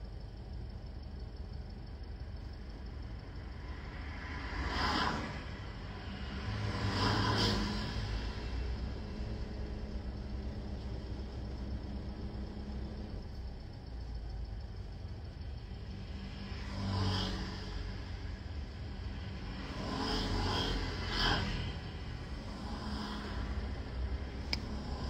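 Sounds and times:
car engine rumble in cabin: 0.0s - 25.0s.

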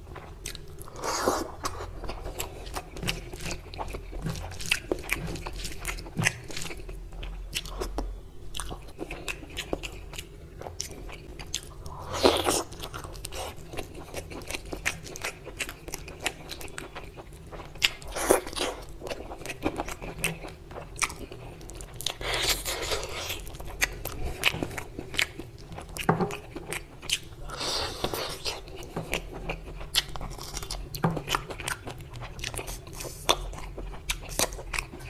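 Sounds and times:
wet chewing: 0.4s - 35.0s.

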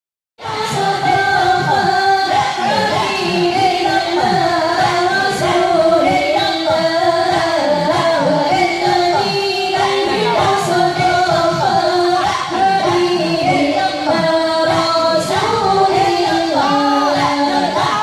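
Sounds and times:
women singing devotional chant: 0.4s - 18.0s.

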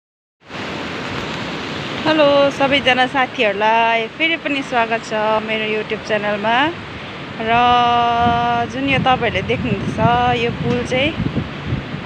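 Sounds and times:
river rushing: 0.4s - 12.0s.

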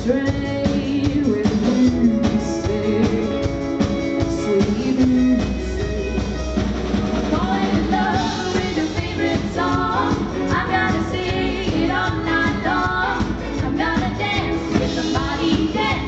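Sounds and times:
live rock band playing: 0.0s - 16.0s
woman singing lead: 0.0s - 16.0s.

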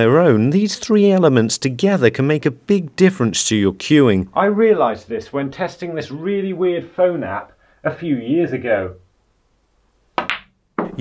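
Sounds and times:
cue tip striking a ball: 10.2s - 11.0s.

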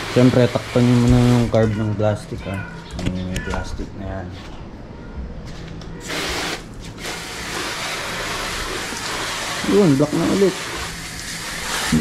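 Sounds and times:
water jet spraying: 0.0s - 1.6s, 6.0s - 12.0s.

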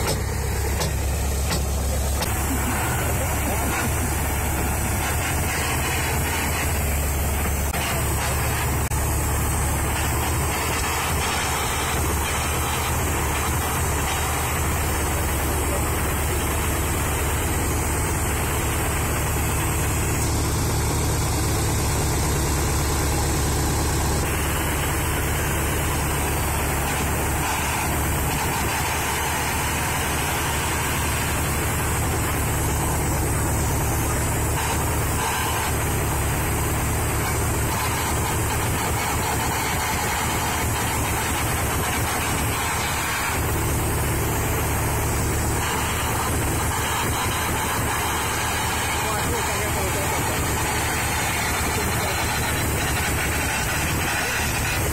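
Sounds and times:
heavy engine idling: 0.0s - 54.9s.

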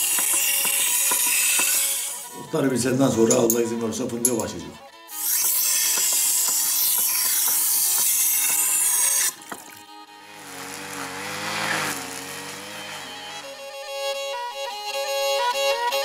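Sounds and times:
metal blade on grinding wheel: 0.0s - 9.5s, 10.3s - 13.5s
brush cutter engine running: 10.2s - 13.6s.

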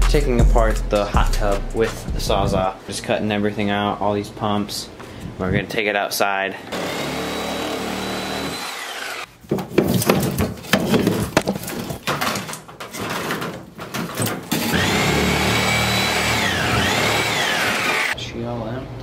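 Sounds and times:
electric power saw whining: 6.7s - 9.3s, 14.5s - 18.2s
crackling and knocking: 8.6s - 14.9s.

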